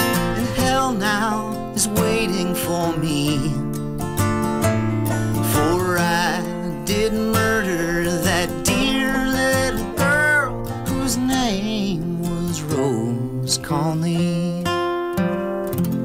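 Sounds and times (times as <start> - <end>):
man singing: 0.0 - 3.9, 5.1 - 15.0
acoustic guitar: 0.0 - 16.0.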